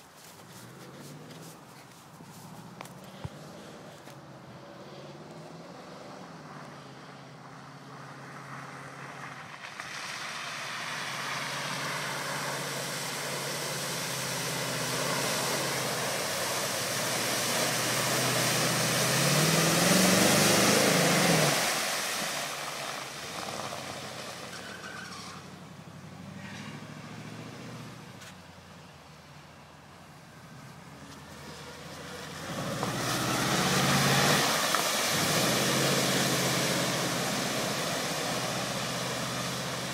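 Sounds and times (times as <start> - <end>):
muddy water splashing: 9.6 - 25.1, 31.0 - 39.9
truck engine revving: 10.8 - 22.4, 31.4 - 39.9.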